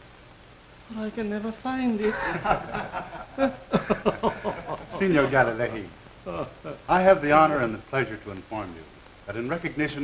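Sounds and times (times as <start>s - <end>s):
men chuckling and laughing: 2.0s - 5.4s.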